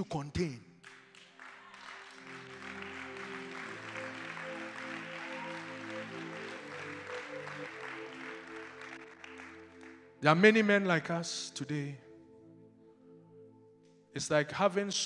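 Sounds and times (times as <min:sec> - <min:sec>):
congregation applauding: 0:00.8 - 0:10.5
keyboard playing soft chords: 0:01.4 - 0:15.0.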